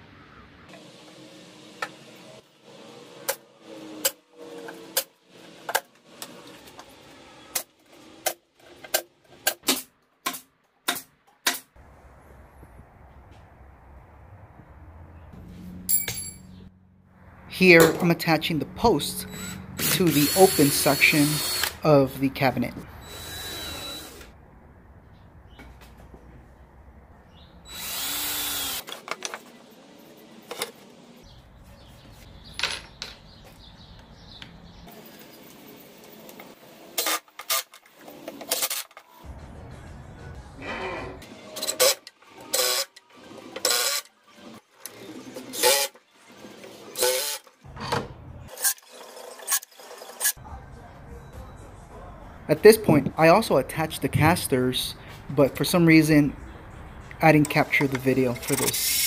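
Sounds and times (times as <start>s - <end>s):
power drill running: 19.2s - 21.8s, 23.0s - 24.3s, 27.7s - 29.0s
tools clicking and knocking on wood: 32.5s - 34.6s.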